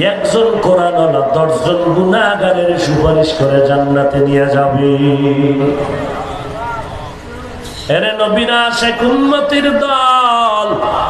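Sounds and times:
man chanting: 0.0s - 7.0s, 7.9s - 11.0s.

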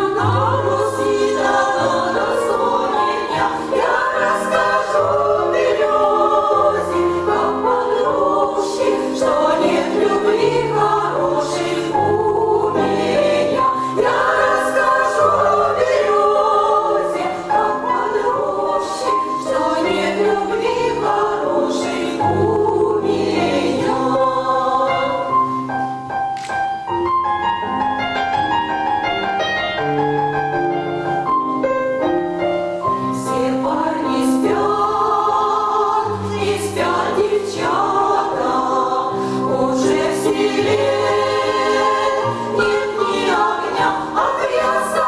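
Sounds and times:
women's choir singing: 0.0s - 25.6s, 33.1s - 45.0s
piano accompaniment: 0.0s - 45.0s.

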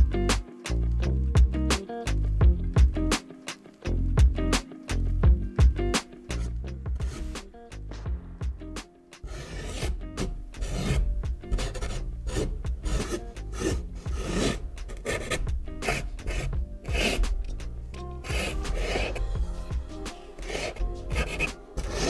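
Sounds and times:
background music: 0.0s - 22.0s
marker scratching on canvas: 6.3s - 7.4s, 9.2s - 17.4s, 18.2s - 19.2s, 20.3s - 22.0s.

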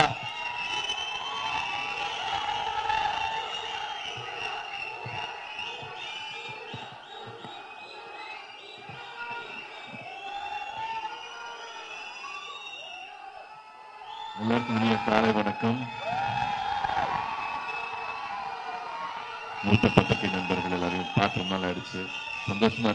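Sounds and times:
audience cheering and shouting: 0.0s - 22.9s.

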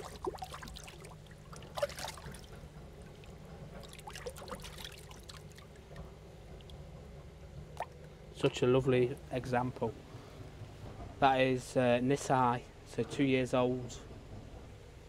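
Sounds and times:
soft water splashes: 0.0s - 8.2s
water trickling and lapping in bowl: 0.0s - 8.2s.

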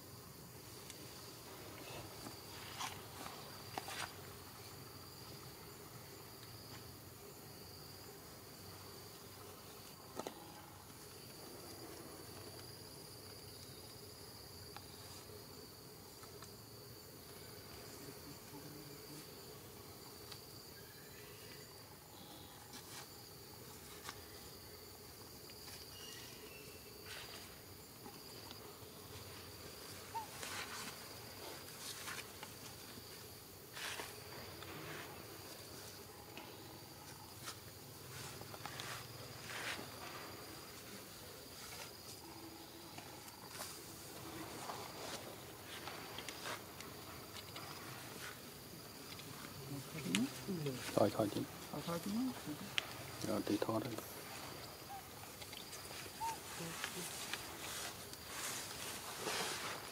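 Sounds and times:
insects trilling: 0.0s - 59.9s
grass rustling: 0.6s - 5.0s, 25.4s - 59.9s.

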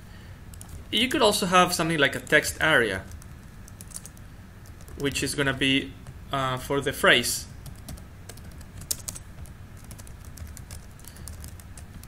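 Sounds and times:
computer keyboard typing: 0.5s - 0.8s, 2.2s - 6.2s, 7.6s - 12.0s.

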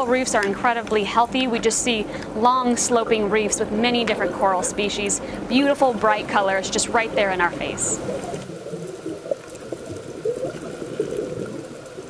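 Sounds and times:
scuba bubbles gurgling underwater: 7.1s - 12.0s.

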